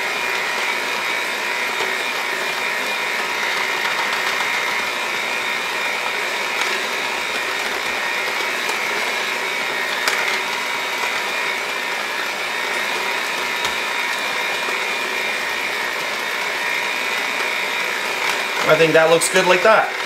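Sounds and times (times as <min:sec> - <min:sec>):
electric hand mixer whining: 0:00.0 - 0:20.0.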